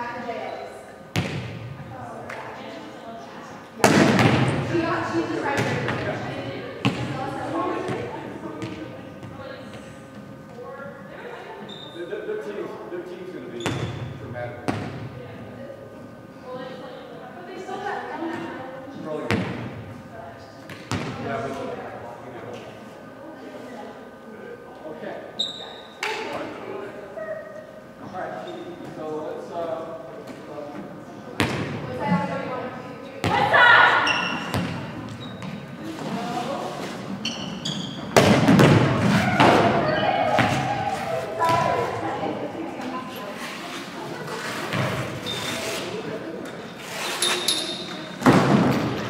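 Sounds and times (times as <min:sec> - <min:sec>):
distant players chatter: 0:00.0 - 0:49.0
volleyball smacks echoing: 0:01.1 - 0:01.7, 0:03.8 - 0:04.7, 0:38.1 - 0:40.7
players calling out: 0:37.2 - 0:42.8.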